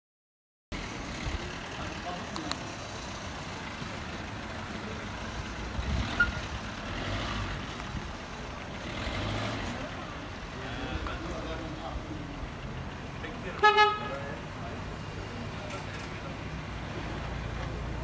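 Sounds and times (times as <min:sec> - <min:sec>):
street noise: 0:00.7 - 0:18.0
van engine running slowly: 0:00.8 - 0:06.9, 0:07.6 - 0:08.8.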